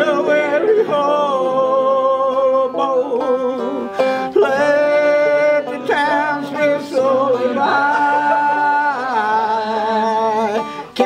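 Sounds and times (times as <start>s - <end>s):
banjo strumming: 0.0s - 11.0s
person singing folk song: 0.0s - 11.0s.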